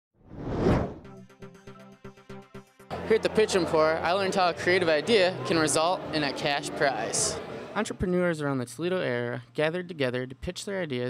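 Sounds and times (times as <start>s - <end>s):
whoosh sound effect: 0.3s - 1.1s
news intro theme music: 1.0s - 7.8s.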